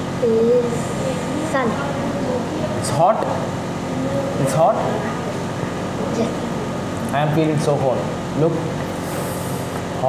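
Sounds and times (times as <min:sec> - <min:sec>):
steady background hum: 0:00.0 - 0:10.0.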